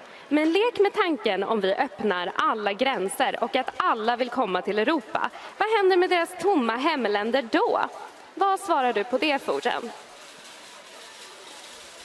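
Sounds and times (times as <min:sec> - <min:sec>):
outdoor background noise: 0:00.0 - 0:12.0.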